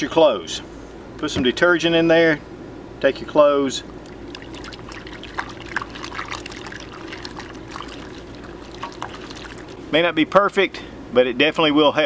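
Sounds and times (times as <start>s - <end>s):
small water splashes: 3.9s - 10.0s
clothes sloshing in soapy water: 4.0s - 9.9s.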